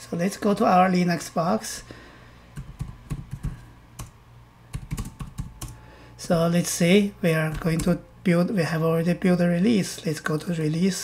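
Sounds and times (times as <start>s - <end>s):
keyboard keys clicking: 2.6s - 5.8s.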